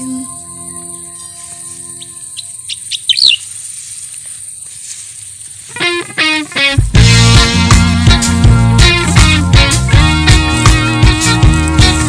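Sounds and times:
held song notes: 0.0s - 2.9s, 5.7s - 12.0s
birds chirping: 0.0s - 6.7s
high insect-like trill: 0.0s - 6.8s.

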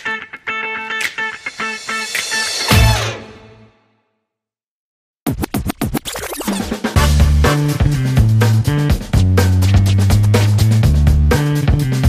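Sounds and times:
funk beat: 0.0s - 3.0s, 6.5s - 12.0s
turntable scratches: 5.3s - 7.0s, 8.6s - 10.9s.

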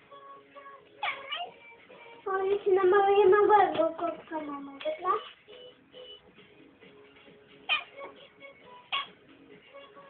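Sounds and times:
faint background music: 0.0s - 10.0s
cat meowing: 1.0s - 1.6s, 7.7s - 8.1s.

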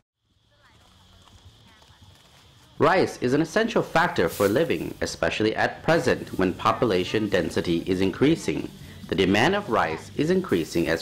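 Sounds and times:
high-pitched hiss: 0.2s - 11.0s.

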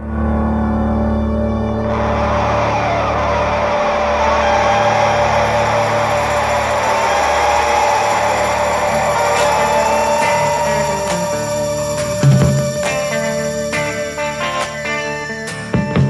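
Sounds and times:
low steady drone: 0.0s - 15.5s
helicopter engine and rotor: 4.6s - 15.5s.

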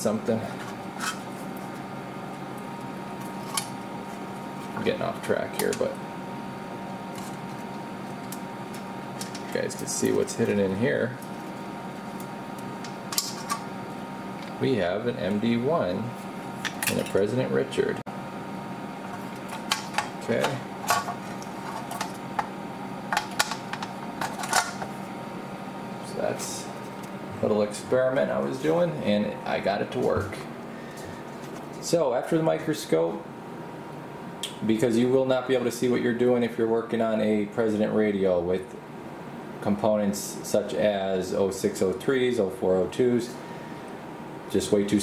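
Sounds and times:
faint background hum: 0.0s - 45.0s.

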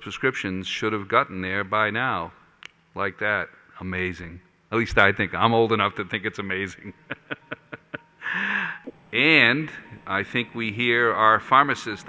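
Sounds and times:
man chuckling: 6.9s - 8.9s.

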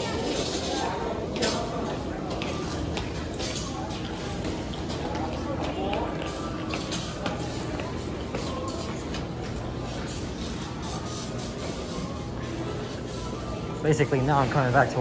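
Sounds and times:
indistinct chatter: 0.0s - 15.0s
low hum of hall: 0.0s - 15.0s.

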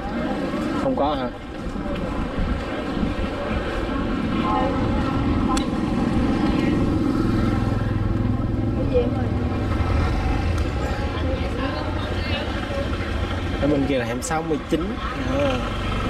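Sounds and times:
motor scooter engines: 0.0s - 16.0s.

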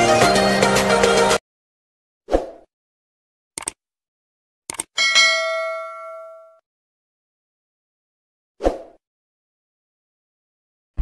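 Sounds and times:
brief clicks: 3.6s - 3.8s, 4.7s - 4.9s
bright bell-like ding: 5.0s - 6.6s.

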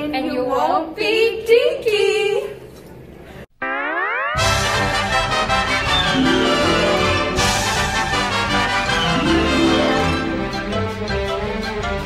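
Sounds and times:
cartoon rising boing: 3.6s - 4.8s
lively music: 3.6s - 12.0s.

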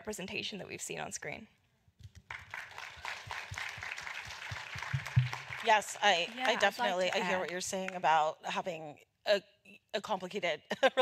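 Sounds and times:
audience applauding: 2.3s - 7.5s.

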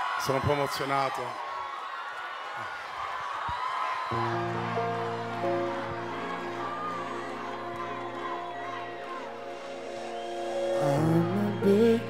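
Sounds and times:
crowd cheering and screaming: 0.0s - 12.0s
live song instrumental chords: 4.2s - 12.0s.

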